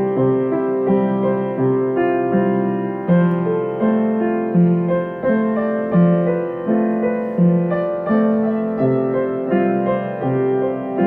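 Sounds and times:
piano chords: 0.0 - 11.0.

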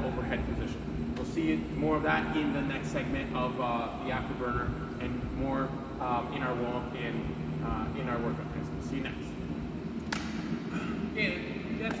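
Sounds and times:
room tone hum: 0.0 - 12.0.

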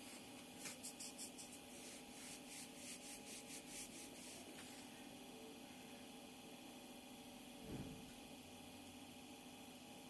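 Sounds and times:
rapid rubbing strokes: 0.6 - 4.5.

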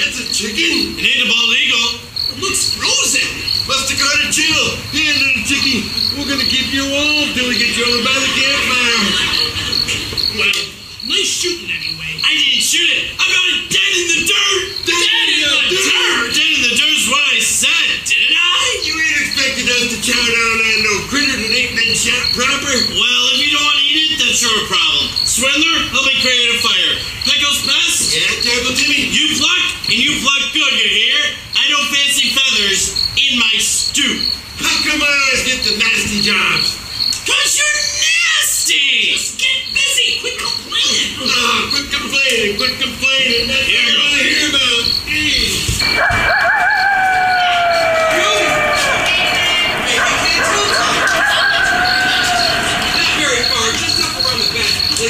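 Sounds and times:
person speaking: 0.0 - 45.9, 48.1 - 55.0
crickets chirping: 0.0 - 55.0
men talking: 0.0 - 55.0.

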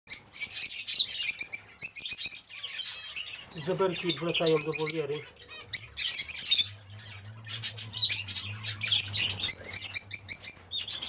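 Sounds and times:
flock of finches chirping: 0.1 - 11.0.

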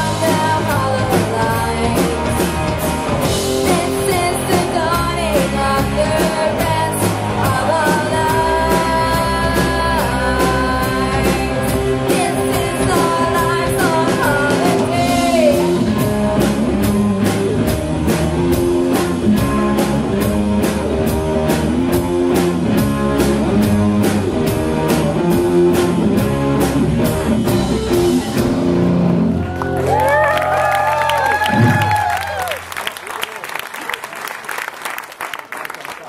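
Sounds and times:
electric guitar: 0.0 - 32.6
bass guitar: 0.0 - 33.0
drums: 0.0 - 33.1
audience applause: 29.0 - 36.0.

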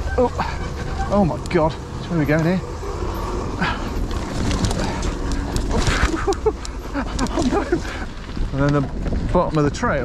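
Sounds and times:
bike clicking and rattling: 0.0 - 10.0
wind and tyres rumbling: 0.0 - 10.0.

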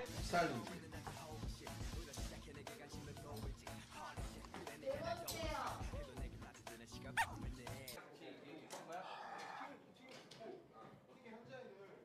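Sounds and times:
background music: 0.0 - 8.0.

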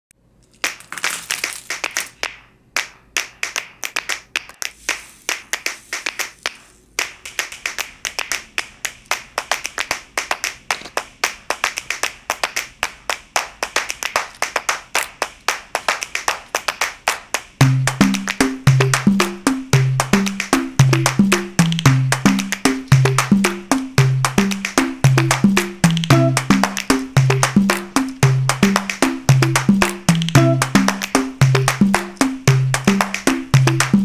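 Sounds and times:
rapid sharp clicks and taps: 0.6 - 34.0
low bass line: 17.6 - 34.0.

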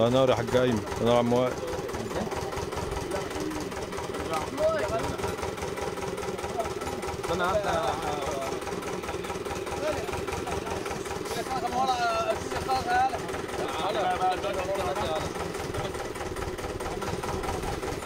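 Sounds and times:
engine idling: 0.0 - 18.0.

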